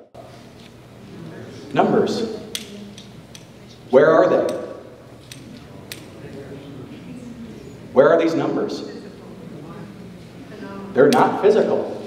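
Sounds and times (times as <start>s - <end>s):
faint murmur of voices: 0.2s - 12.0s.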